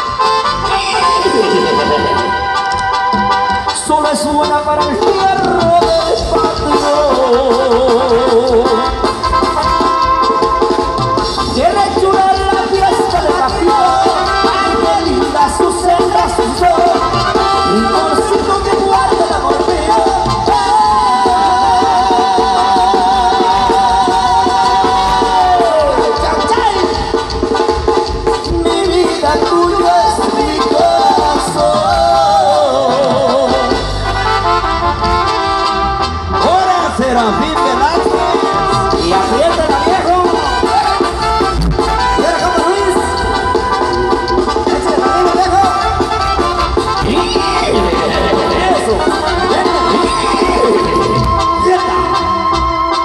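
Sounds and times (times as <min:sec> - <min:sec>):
amplified banda music: 0:00.0 - 0:53.0
drums: 0:00.0 - 0:53.0
heavy bass line: 0:00.0 - 0:53.0
tuba: 0:04.7 - 0:53.0.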